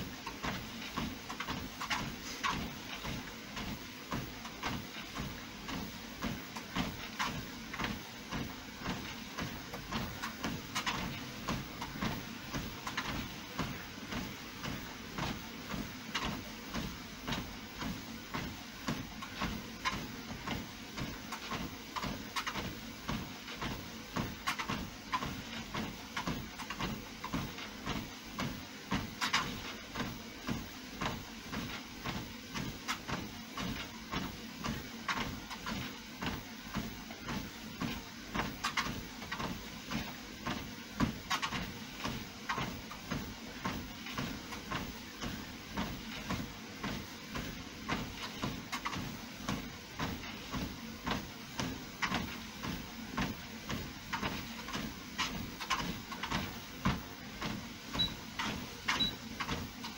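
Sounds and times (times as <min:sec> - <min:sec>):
footfalls on treadmill belt: 0:00.0 - 0:59.9
treadmill motor hum: 0:00.0 - 0:59.9.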